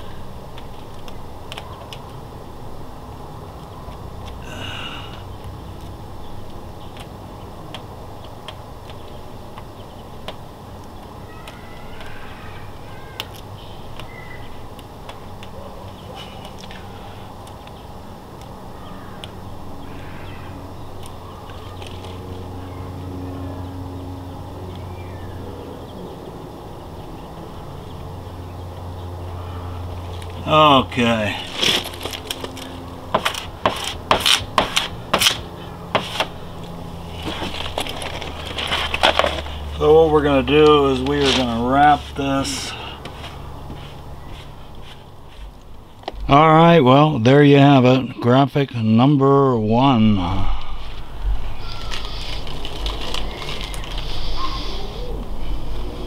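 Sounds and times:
steady low hum: 0.0 - 56.0
squeegee scraping decal: 31.3 - 36.4, 37.1 - 45.5
paper backing rustling: 31.3 - 45.7, 51.6 - 55.1
falling voice-like sound: 49.7 - 52.2.

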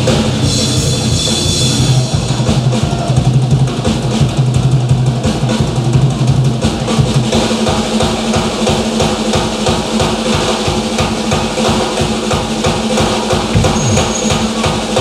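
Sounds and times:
fast drum beat: 0.0 - 15.0
steady low note: 13.5 - 14.8.

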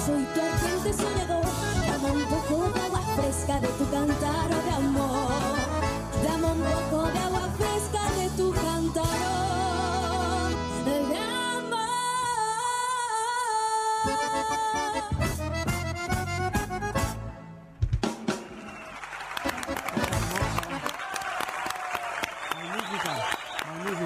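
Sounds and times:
accordion polka music: 0.0 - 12.3, 13.9 - 17.8, 19.4 - 21.0
people applauding: 18.2 - 24.0.

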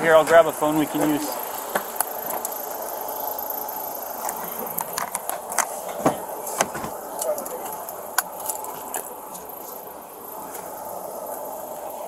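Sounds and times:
steady background hum: 0.0 - 12.0
car door clicks and knocks: 5.0 - 7.0.

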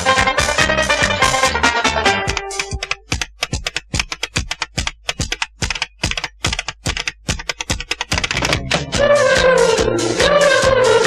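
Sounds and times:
tap-dance shoe clicks: 2.3 - 8.9.

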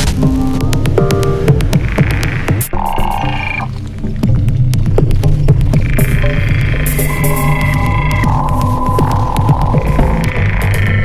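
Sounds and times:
deep continuous bass: 0.0 - 11.0
electronic music: 0.0 - 11.0.

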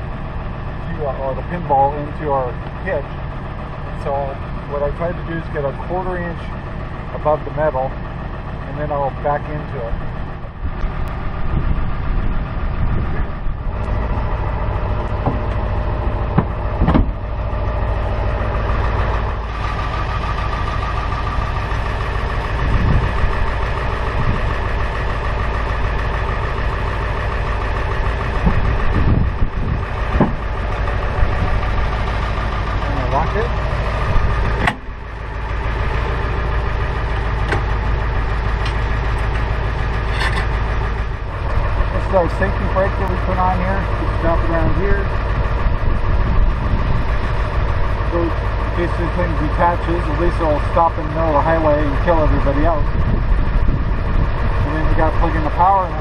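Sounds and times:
truck engine idling: 0.0 - 56.0
knocks: 16.3 - 17.2.

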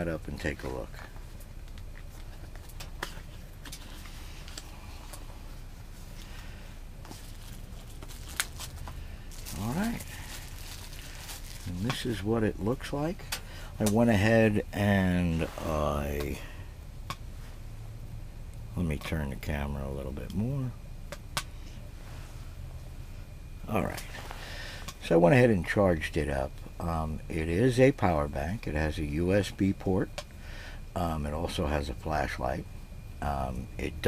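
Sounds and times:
low background hum: 0.0 - 34.0
packaging rustling and clicking: 7.1 - 12.0.

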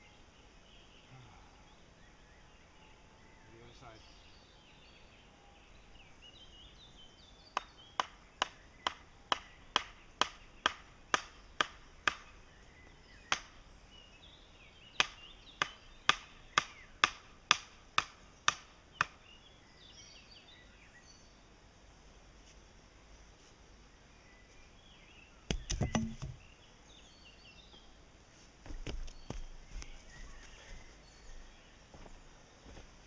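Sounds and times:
hammer knocking wooden stake: 7.6 - 12.3, 15.0 - 19.2, 25.5 - 26.4.

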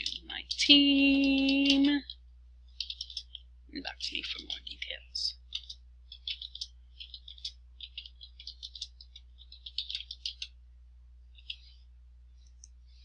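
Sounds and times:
computer keyboard typing: 0.0 - 3.4, 4.0 - 10.6.

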